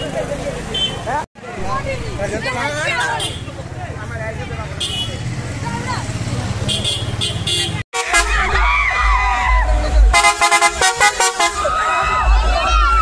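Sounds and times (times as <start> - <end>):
short horn blasts: 6.7 - 8.6, 10.1 - 11.7
excited voices: 8.0 - 13.0
heavy bass music: 8.0 - 13.0
young people shouting and cheering: 8.0 - 13.0.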